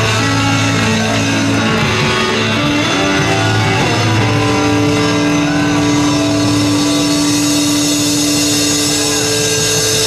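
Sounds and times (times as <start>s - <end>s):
cymbals washing: 0.0s - 10.0s
distorted electric guitar chord: 0.0s - 10.0s.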